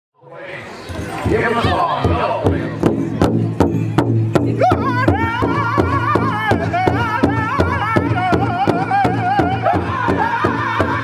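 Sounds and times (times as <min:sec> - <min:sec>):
big drum beats: 0:00.9 - 0:11.0
high singing voice: 0:04.4 - 0:11.0.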